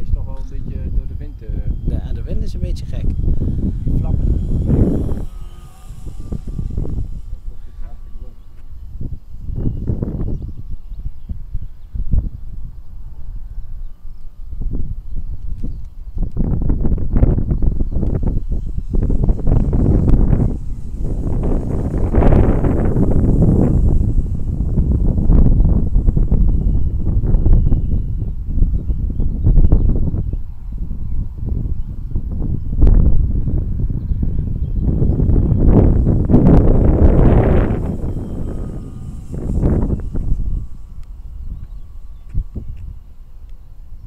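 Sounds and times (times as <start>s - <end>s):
wind buffeting microphone: 0.0s - 44.0s.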